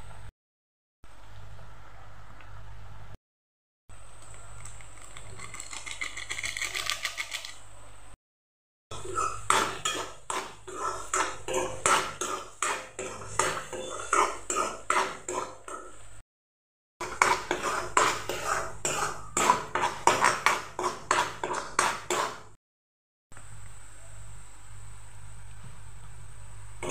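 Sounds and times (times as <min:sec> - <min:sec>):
metal spoon scraping metal pan: 0:09.0 - 0:16.0, 0:17.0 - 0:22.6.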